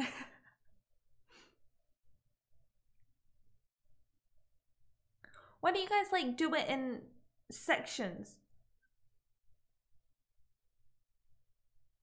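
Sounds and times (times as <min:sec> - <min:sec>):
woman's breathy laugh: 0:00.0 - 0:00.7.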